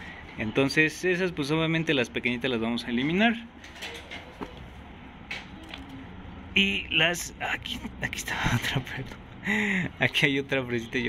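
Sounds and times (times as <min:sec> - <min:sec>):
low steady background noise: 0:00.0 - 0:11.0.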